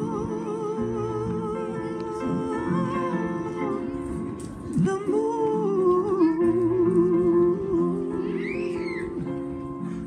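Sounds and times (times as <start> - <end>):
piano sustained chords: 0.0 - 10.0.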